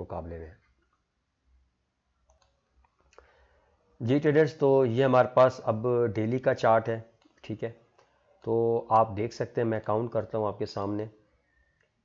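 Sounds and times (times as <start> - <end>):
faint computer mouse clicks: 2.2 - 3.4.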